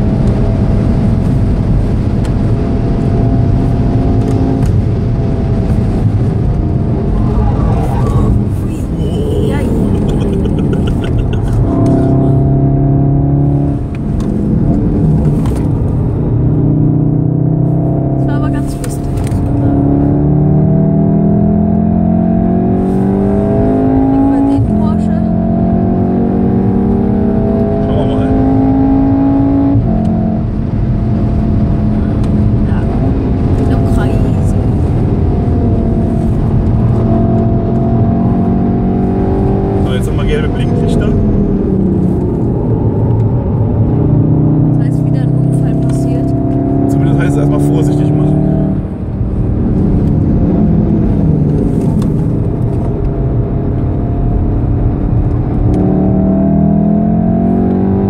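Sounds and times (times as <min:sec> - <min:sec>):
car engine accelerating: 0:00.0 - 0:58.0.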